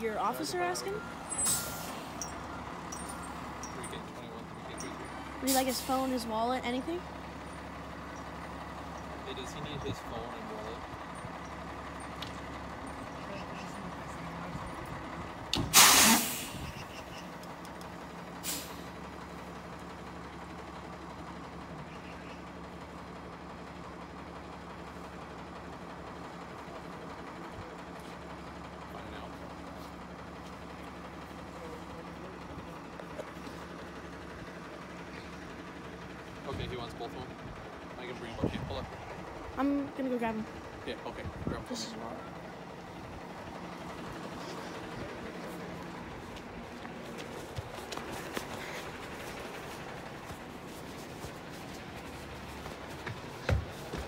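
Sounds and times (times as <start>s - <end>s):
diesel engine idling: 0.0s - 54.0s
air brake hiss: 15.6s - 16.9s, 18.4s - 19.0s.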